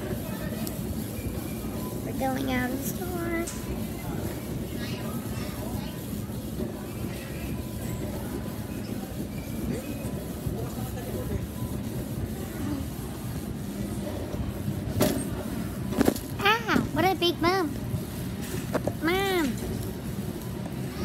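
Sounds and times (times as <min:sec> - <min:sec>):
shopping cart rolling and rattling: 0:00.0 - 0:21.0.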